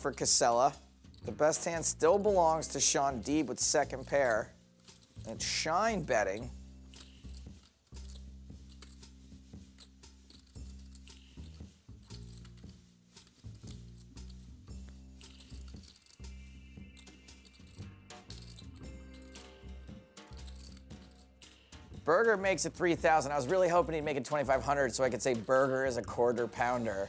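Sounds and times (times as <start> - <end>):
quiet background music: 0.0 - 27.0
poker chips clicking: 9.8 - 14.5, 15.2 - 19.6.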